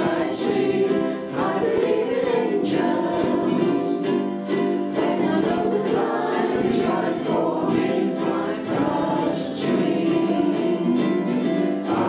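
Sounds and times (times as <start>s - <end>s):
men and women singing together: 0.0s - 12.0s
ukuleles strummed: 0.0s - 12.0s.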